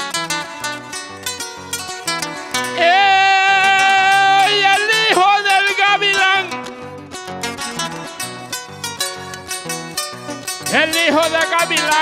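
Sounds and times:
guitar strumming: 0.0s - 12.0s
person singing long wordless note: 2.7s - 6.6s.

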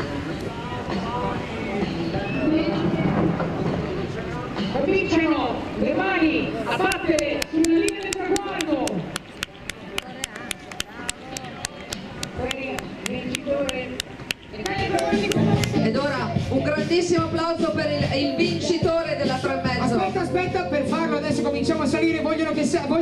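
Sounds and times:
voices shouting and cheering: 4.1s - 23.0s
fast hand-clapping: 6.8s - 15.8s.

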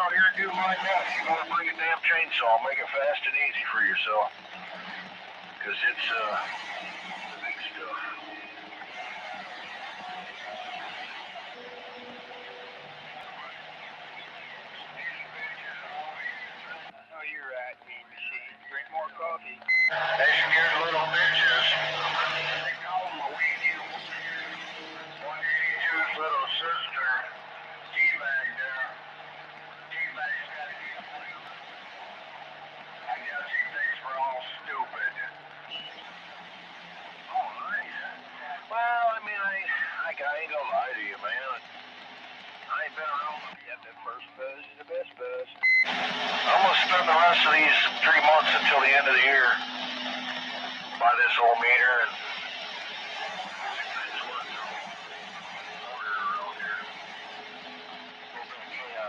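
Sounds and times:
radio voices talking: 0.0s - 5.0s, 5.6s - 10.9s, 14.2s - 31.6s, 33.0s - 36.0s, 37.2s - 41.6s, 42.7s - 59.0s
whistling radio tones: 0.0s - 59.0s.

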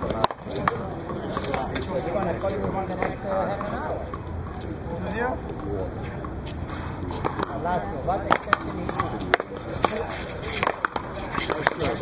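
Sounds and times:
people talking: 0.0s - 12.0s
rubber ball cracking off paddles: 10.6s - 12.0s.

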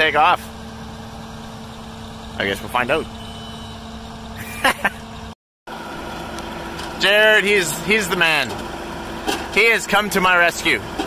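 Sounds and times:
tractor diesel engine idling: 0.0s - 11.0s.

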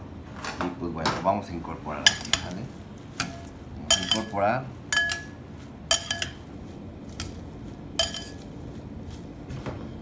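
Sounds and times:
tongs clinking against glass bowl: 2.0s - 2.6s, 3.2s - 6.4s, 8.0s - 8.5s
lettuce rustling: 6.5s - 9.7s.

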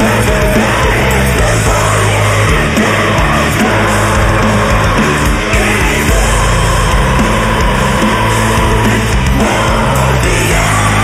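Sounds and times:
distorted metal guitars and bass: 0.0s - 11.0s.

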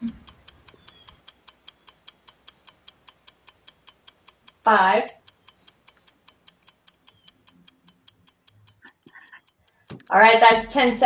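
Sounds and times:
timer ticking fast: 0.0s - 11.0s.

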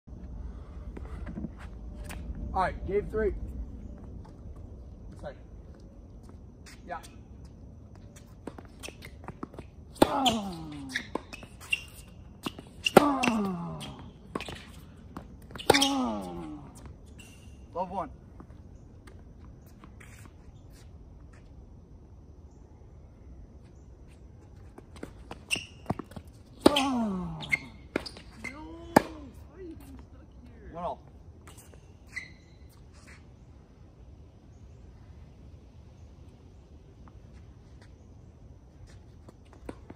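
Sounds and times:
sneaker footsteps on court: 3.8s - 17.5s, 23.6s - 30.5s, 38.7s - 39.9s
tennis ball strikes and bounces: 8.4s - 16.3s, 25.0s - 29.3s
tennis ball struck and bouncing: 28.9s - 29.2s.

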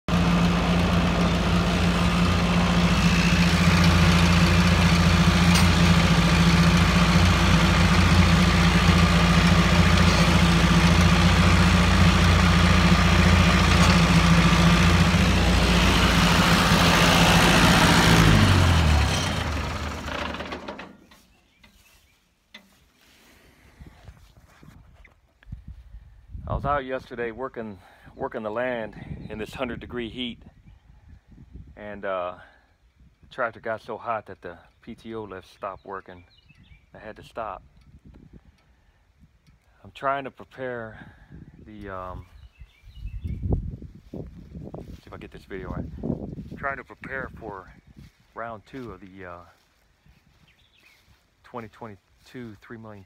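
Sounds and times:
tractor engine running: 0.1s - 21.8s, 41.8s - 53.0s.

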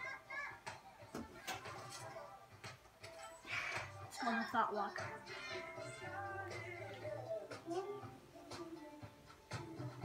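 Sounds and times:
low film music from television: 0.0s - 10.0s.

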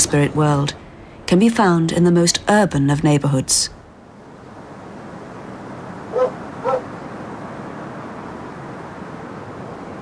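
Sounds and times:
steady background hiss: 0.0s - 10.0s
dog barking: 6.1s - 6.9s.

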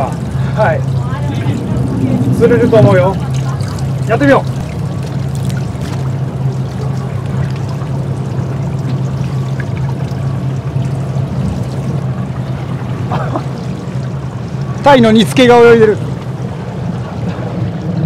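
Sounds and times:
boat engine idling: 0.0s - 18.0s
water sloshing against hull: 0.0s - 18.0s.

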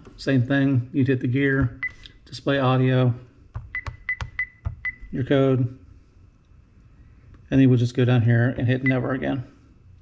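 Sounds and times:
finger tapping touchscreen: 3.6s - 5.0s
alarm keypad beeps: 3.6s - 5.2s.

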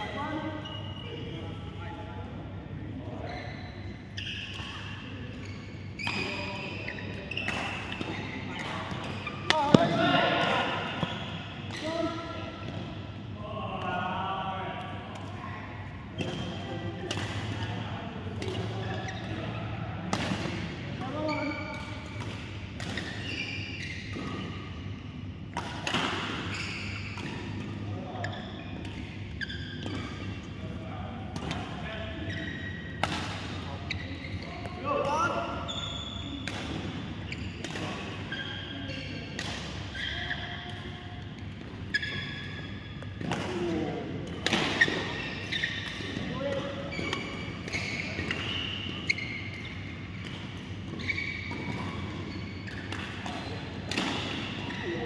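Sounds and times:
shoes squeaking on court: 3.2s - 12.8s, 18.4s - 19.7s, 20.5s - 22.2s, 22.8s - 24.9s, 26.3s - 30.6s, 31.5s - 55.0s
racket striking shuttlecock: 52.7s - 54.6s.

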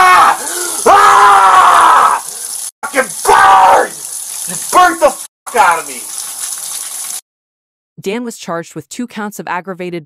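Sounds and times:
water pouring: 0.1s - 7.2s.

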